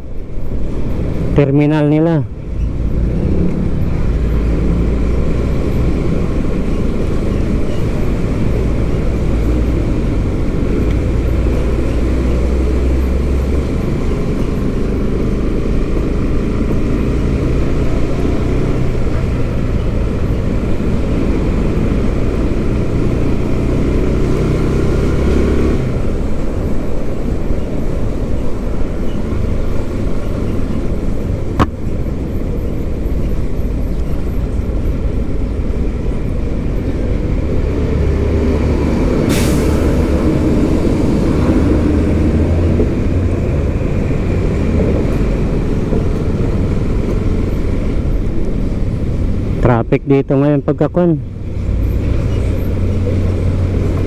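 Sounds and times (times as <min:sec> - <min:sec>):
engine rumble and road noise: 0:00.0 - 0:54.0.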